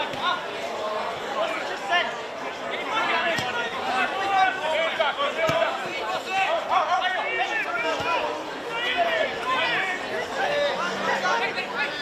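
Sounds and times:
murmur of voices: 0.0s - 12.0s
players shouting calls: 0.0s - 12.0s.

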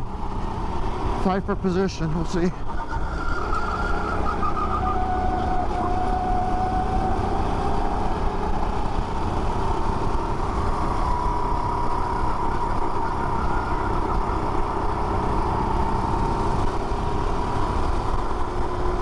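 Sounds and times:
go-kart engine running hard: 0.0s - 19.0s.

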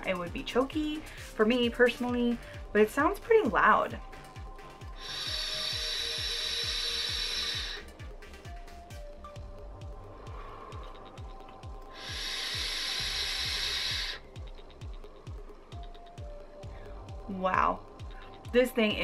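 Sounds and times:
music with low beat: 0.0s - 19.0s
airy hiss of vape draw: 4.8s - 8.5s, 10.1s - 14.7s.

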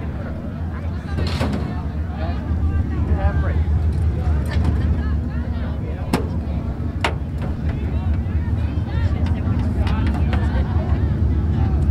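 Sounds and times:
race car engine idling: 0.0s - 11.9s
voices: 0.0s - 11.9s.

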